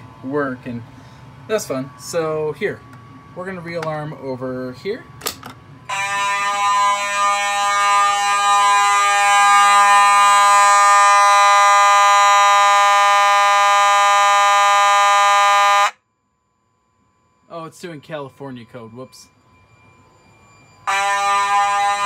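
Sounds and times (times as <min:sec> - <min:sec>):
steady alarm horn tone: 0:05.8 - 0:16.2, 0:17.1 - 0:22.0.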